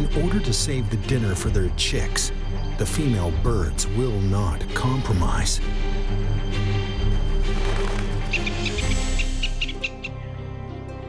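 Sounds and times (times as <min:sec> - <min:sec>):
background music: 0:00.0 - 0:11.0
high chirping animal calls: 0:08.3 - 0:10.3.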